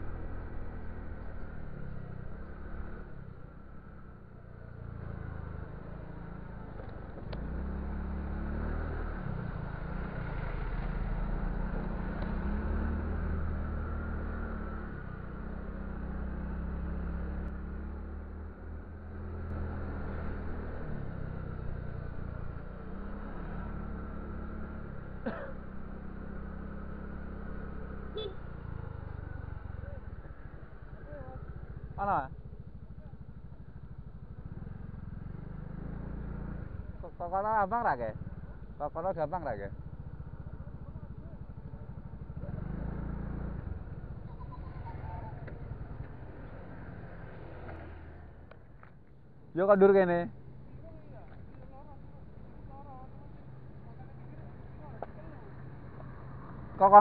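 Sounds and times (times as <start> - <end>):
scooter engine rumble: 0.0 - 49.6, 50.3 - 57.0.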